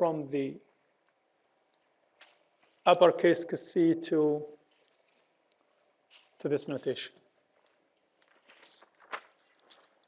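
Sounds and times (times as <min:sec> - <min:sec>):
faint footsteps: 0:01.8 - 0:02.9, 0:04.6 - 0:06.5.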